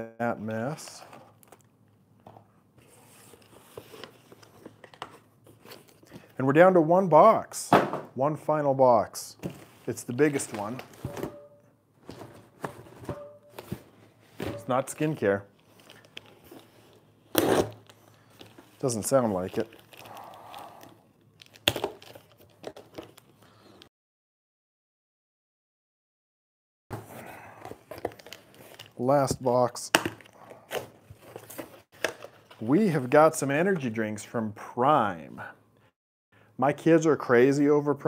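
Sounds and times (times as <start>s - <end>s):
plastic packaging crinkling: 17.7s - 23.4s.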